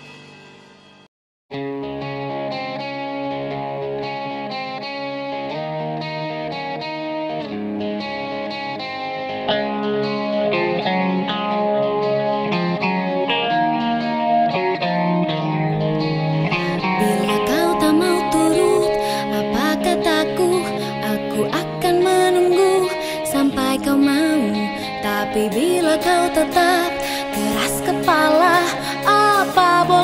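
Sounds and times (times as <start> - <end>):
instrumental pop intro with guitar: 0.0 - 30.0.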